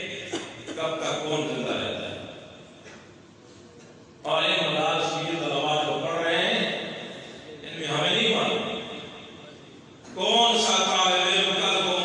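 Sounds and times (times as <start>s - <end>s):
man speaking in sing-song voice: 7.6s - 8.7s, 10.1s - 12.0s.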